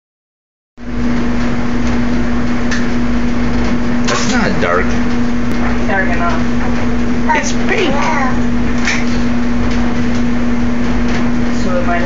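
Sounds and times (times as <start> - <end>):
constant hum: 0.8 - 12.0
washing machine filling with water: 0.8 - 12.0.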